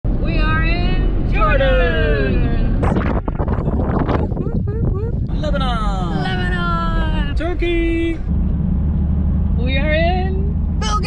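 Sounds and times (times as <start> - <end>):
vehicle engine rumble inside cabin: 0.1 - 11.0.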